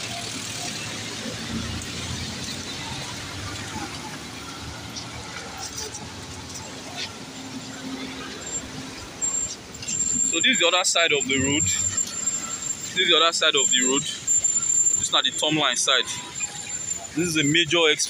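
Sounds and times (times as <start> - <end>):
car engines passing: 0.0 - 18.0
faint voices: 0.0 - 18.0
road noise hum: 0.0 - 18.0.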